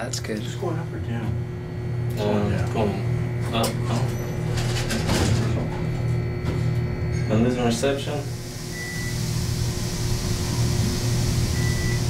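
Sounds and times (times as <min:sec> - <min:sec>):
elevator hum: 0:00.0 - 0:12.0.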